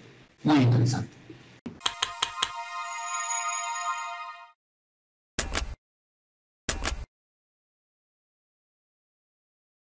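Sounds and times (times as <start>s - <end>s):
electronic jingle chord: 1.9s - 4.6s.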